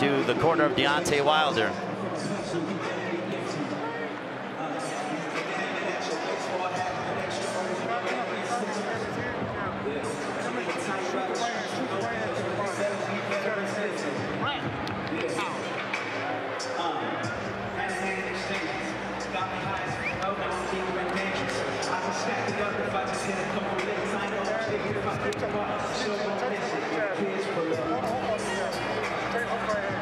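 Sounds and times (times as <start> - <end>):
indistinct voices talking: 0.0 - 2.0
arena crowd noise: 0.0 - 30.0.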